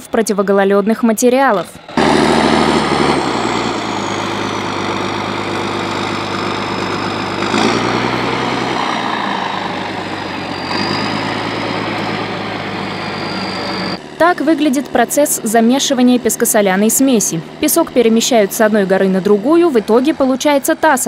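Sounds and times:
diesel engine under load: 0.0s - 21.0s
thin high whine: 8.8s - 19.8s.

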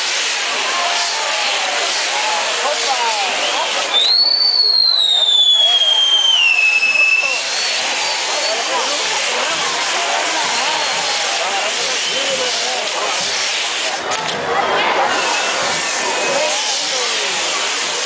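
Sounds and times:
firework wheel hissing: 0.0s - 18.0s
firework whistling: 0.0s - 18.0s.

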